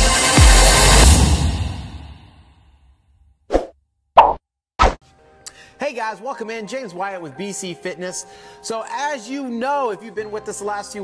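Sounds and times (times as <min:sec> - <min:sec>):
popping sound effects: 0:04.2 - 0:05.0.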